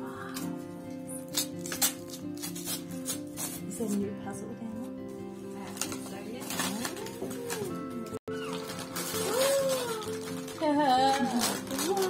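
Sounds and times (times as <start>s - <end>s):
music with steady held tones: 0.0s - 12.0s
paper crackling: 5.4s - 12.0s.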